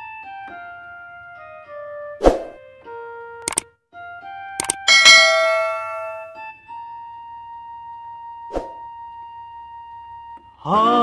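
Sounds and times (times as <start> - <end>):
sustained keyboard music notes: 0.0 - 10.6
double mouse click: 3.4 - 3.6, 4.6 - 4.8
bright bell ding: 4.6 - 6.5.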